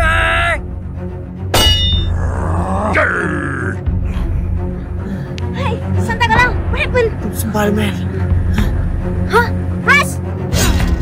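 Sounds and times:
background music: 0:00.0 - 0:11.0
metallic clang: 0:01.5 - 0:02.1.

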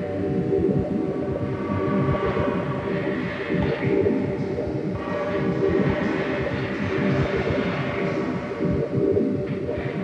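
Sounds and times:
ambient electronic drone: 0:00.0 - 0:10.0.

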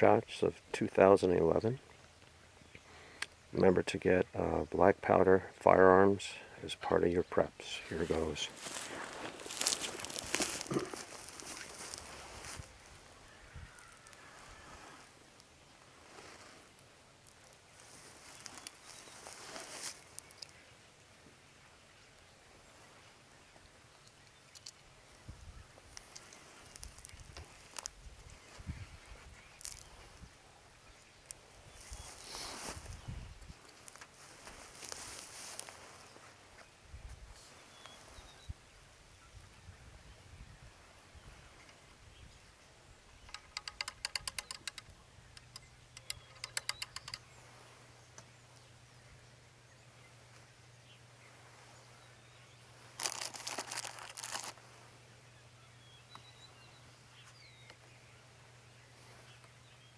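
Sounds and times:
gear handling rustle: 0:07.8 - 0:12.8, 0:16.0 - 0:20.5, 0:52.9 - 0:54.6
footsteps on dry leaves: 0:07.8 - 0:15.2, 0:15.8 - 0:20.4, 0:31.8 - 0:33.0, 0:33.8 - 0:36.5, 0:52.7 - 0:55.0
small clicks: 0:24.0 - 0:24.9, 0:43.2 - 0:47.3.

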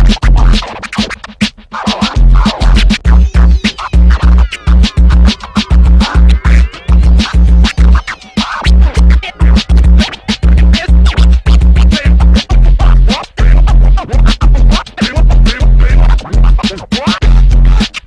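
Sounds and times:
hip-hop beat: 0:00.0 - 0:18.0
vinyl record scratching: 0:00.0 - 0:18.0.

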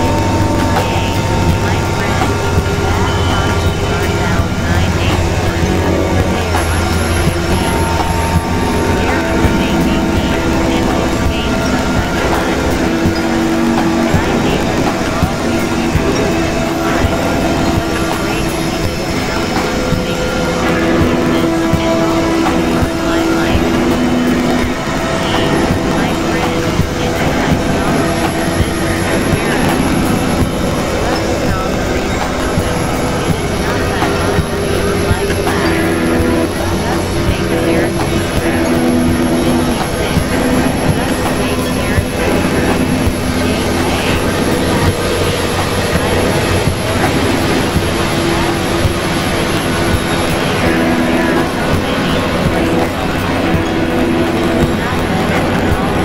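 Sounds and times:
noise drone music: 0:00.0 - 0:56.0
synthesizer drone tones: 0:00.0 - 0:56.0.

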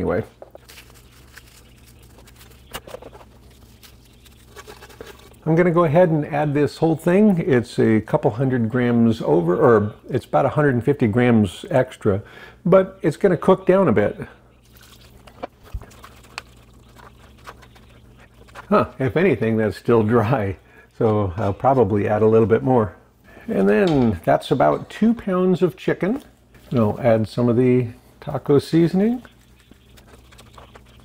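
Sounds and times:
crackling of dry food shredded: 0:00.0 - 0:05.6, 0:14.6 - 0:19.0, 0:28.7 - 0:31.0
sharp crackles: 0:00.6 - 0:05.5
broth pouring: 0:00.9 - 0:05.5, 0:14.6 - 0:19.0.

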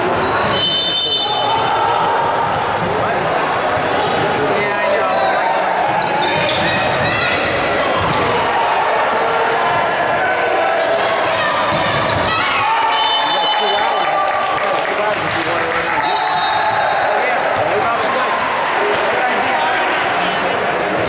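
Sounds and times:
people chattering and calling: 0:00.0 - 0:21.0.

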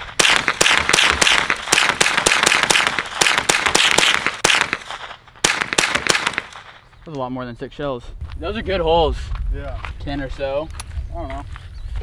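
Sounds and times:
rifle shots: 0:00.0 - 0:06.9.

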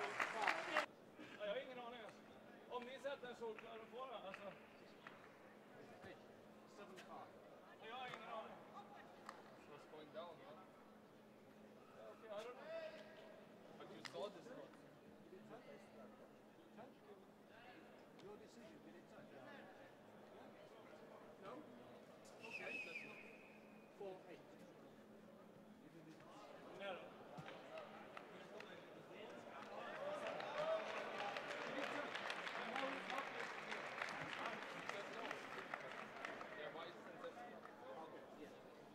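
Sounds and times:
crowd shouting and clapping: 0:00.0 - 0:00.9, 0:29.6 - 0:36.7
crowd voices: 0:00.0 - 0:00.9.

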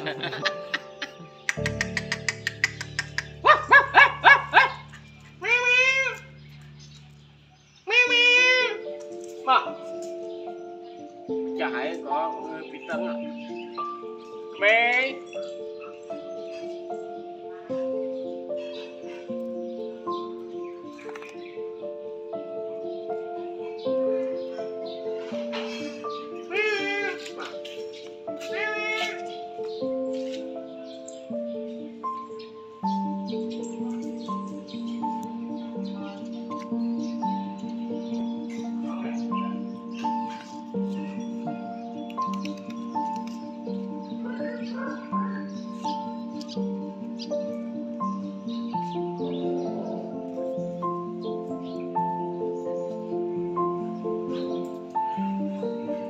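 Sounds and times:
background music held notes: 0:00.0 - 0:56.0
music with ticking beat: 0:00.1 - 0:04.7
dog barking: 0:03.2 - 0:05.0, 0:44.2 - 0:45.6
meow-like animal calls: 0:05.4 - 0:06.3, 0:07.8 - 0:08.9, 0:26.5 - 0:27.6, 0:28.5 - 0:29.3.

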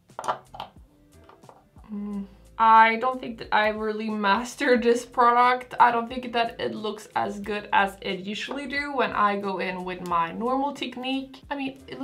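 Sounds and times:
quiet background music: 0:00.0 - 0:12.0
person humming: 0:01.8 - 0:02.5.

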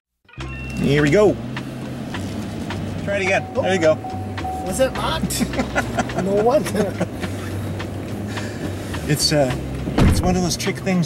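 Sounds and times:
car cabin hum: 0:00.7 - 0:11.0.

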